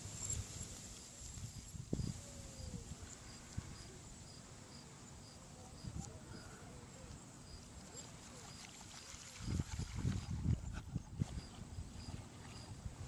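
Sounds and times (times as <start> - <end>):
insect chirping: 0.0 - 6.5.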